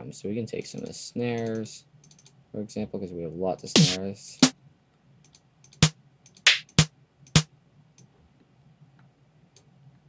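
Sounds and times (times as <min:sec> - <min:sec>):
electronic snare hits: 0:03.8 - 0:04.5, 0:05.8 - 0:07.5.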